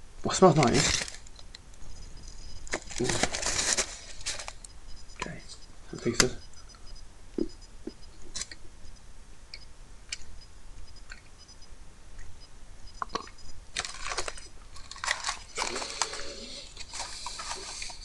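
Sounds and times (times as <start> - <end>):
crunching and chewing chocolate: 13.0 - 18.0.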